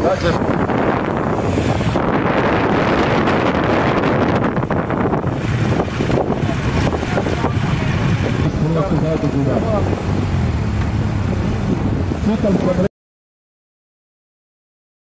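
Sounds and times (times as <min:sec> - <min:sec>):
motorcycle engines pulling away: 0:00.0 - 0:12.9
wind buffeting microphone: 0:00.0 - 0:12.9.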